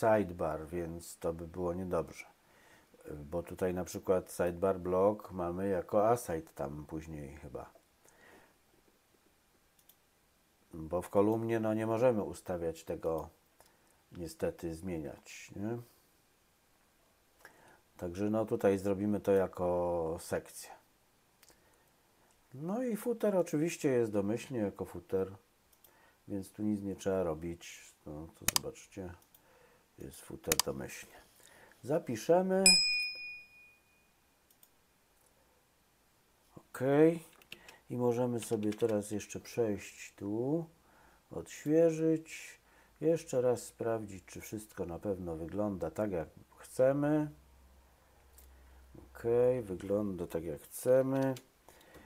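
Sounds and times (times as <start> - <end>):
computer mouse clicks: 28.4 - 29.4, 30.5 - 30.7, 34.5 - 34.8, 37.3 - 37.8, 38.4 - 39.0.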